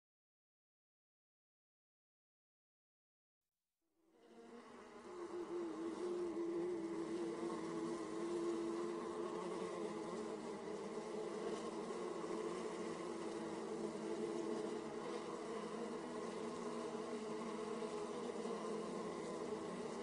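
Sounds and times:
bee buzzing: 0:04.2 - 0:20.0.

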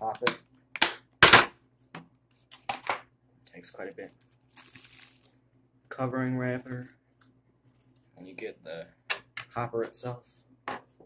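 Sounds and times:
plastic wrapping crinkling: 0:04.1 - 0:05.4.

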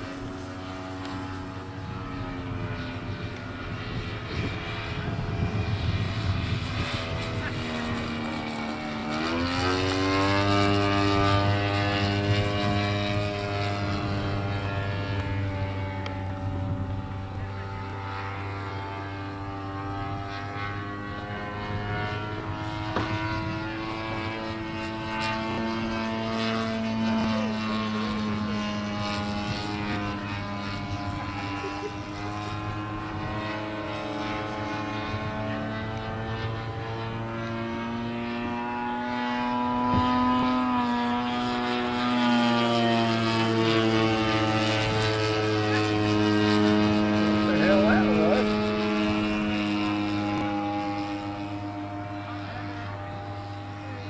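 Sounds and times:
model airplane engine drone: 0:00.0 - 0:54.0.

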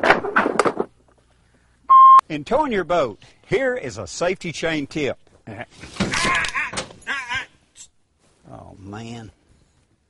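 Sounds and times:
electronic beep: 0:01.9 - 0:02.2.

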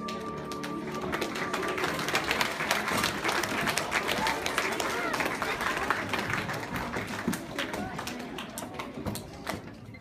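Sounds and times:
show music: 0:00.0 - 0:02.9
audience applauding: 0:00.0 - 0:09.0.

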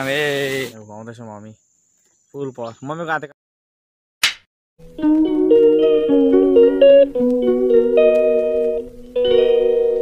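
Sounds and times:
high insect chirr: 0:00.0 - 0:03.1.

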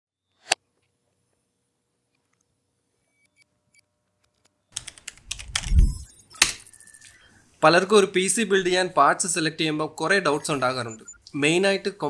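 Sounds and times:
computer keyboard typing: 0:04.8 - 0:07.2.

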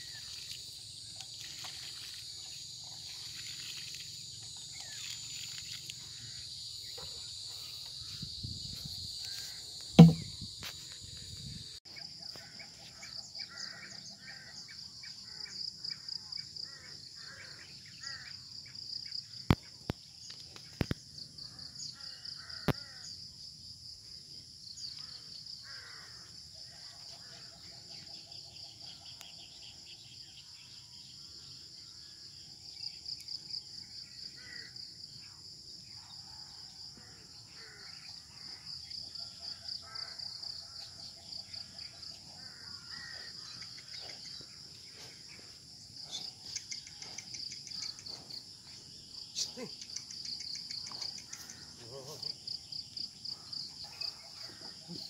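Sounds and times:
insects chorus: 0:00.0 - 0:55.0
repeated bird calls: 0:49.1 - 0:52.3.

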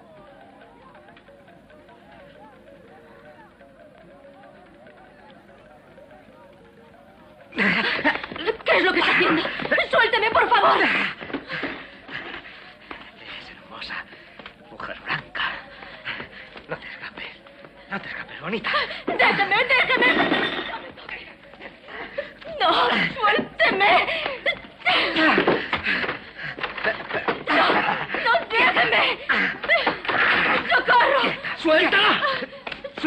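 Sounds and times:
person panting heavily: 0:10.8 - 0:14.5, 0:15.4 - 0:19.2, 0:24.1 - 0:28.3, 0:29.2 - 0:30.3.

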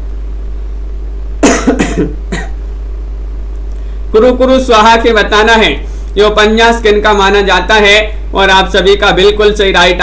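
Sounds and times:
low hum: 0:00.0 - 0:10.0
man coughing: 0:01.4 - 0:02.6.

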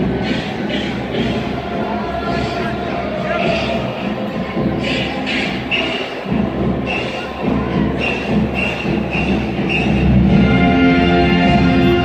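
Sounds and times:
crowd murmur: 0:00.0 - 0:12.0
music over public address: 0:00.0 - 0:12.0.

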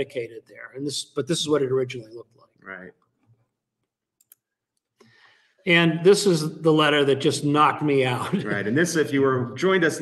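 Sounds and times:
man speaking: 0:00.0 - 0:03.0, 0:05.6 - 0:10.0.

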